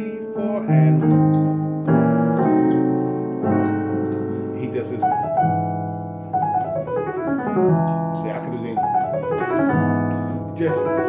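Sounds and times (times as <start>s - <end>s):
digital piano chords and melody: 0.0s - 11.0s.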